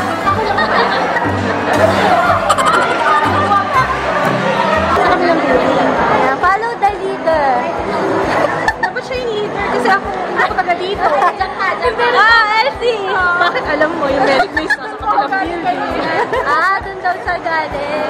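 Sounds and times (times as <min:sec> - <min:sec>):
people chattering: 0:00.0 - 0:18.0.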